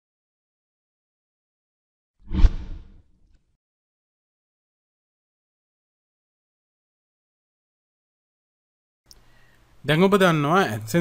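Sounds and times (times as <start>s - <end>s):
whoosh with deep thud: 2.3s - 3.0s.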